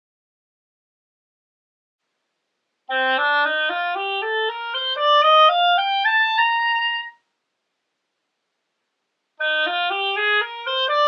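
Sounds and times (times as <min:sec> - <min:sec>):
oboe playing rising scale: 0:02.9 - 0:07.2, 0:09.4 - 0:11.0.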